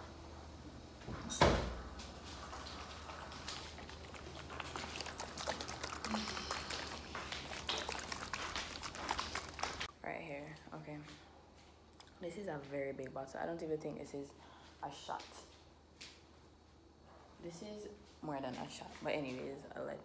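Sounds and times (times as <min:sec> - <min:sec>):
small bottle clicks and rustles: 0:02.6 - 0:09.9.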